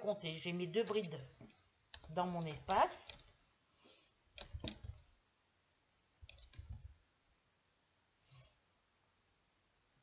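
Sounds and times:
soft clicks and knocks: 4.4s - 5.1s.

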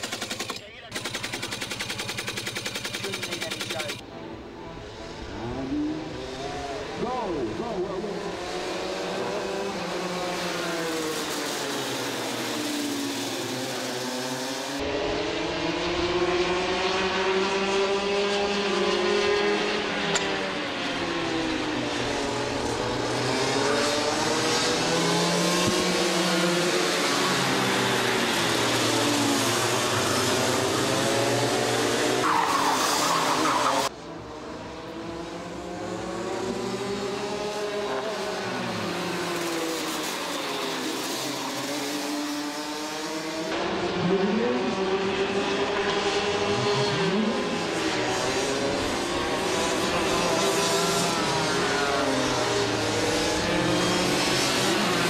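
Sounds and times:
kart engines revving: 0.0s - 55.0s.

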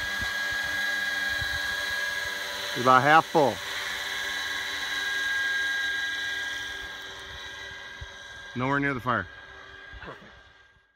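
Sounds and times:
model helicopter rotor whine: 0.0s - 10.9s.

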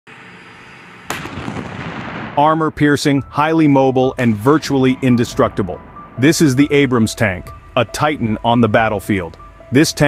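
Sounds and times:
tank gun blast: 1.0s - 2.9s.

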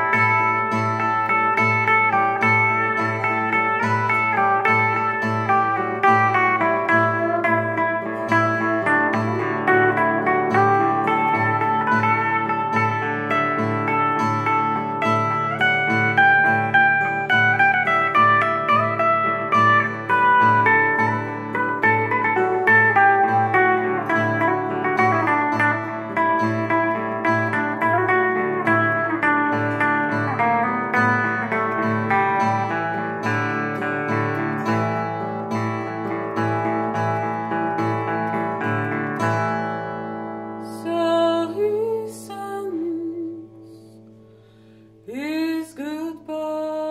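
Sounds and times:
electric and acoustic guitars playing: 0.0s - 46.9s.

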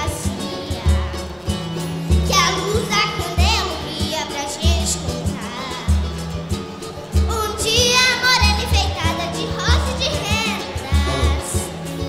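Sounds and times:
person singing: 10.4s - 11.8s
samba band playing: 10.4s - 12.0s.

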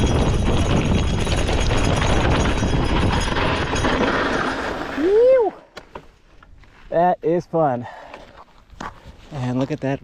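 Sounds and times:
bike rattling: 0.0s - 5.1s
wind rumbling on microphone: 0.0s - 5.2s.

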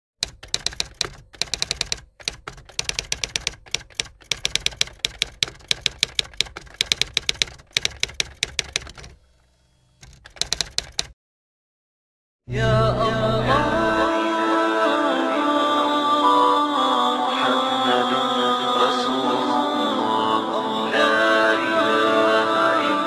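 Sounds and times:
typewriter key clicks: 0.2s - 9.2s, 10.0s - 11.1s.

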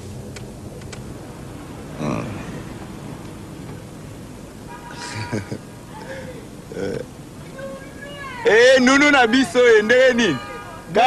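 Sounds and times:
man calling out a greeting: 8.4s - 11.0s.

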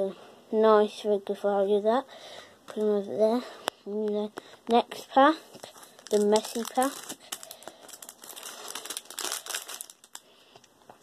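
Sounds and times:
foil wrapper crinkling: 5.5s - 10.4s.

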